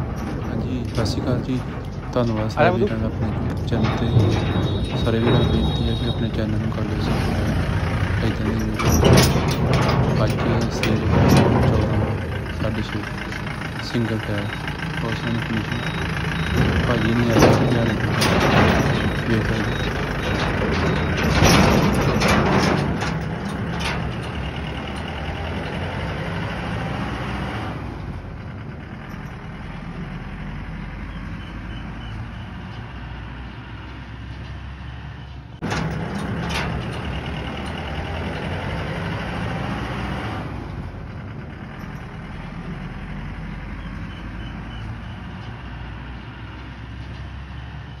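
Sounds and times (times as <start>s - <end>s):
tyre and road noise: 0.0s - 48.0s
vehicle running at road speed: 0.0s - 48.0s.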